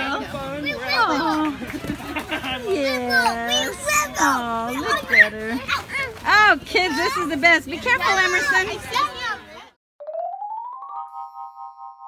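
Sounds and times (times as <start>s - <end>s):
chime-like chord: 10.2s - 12.0s.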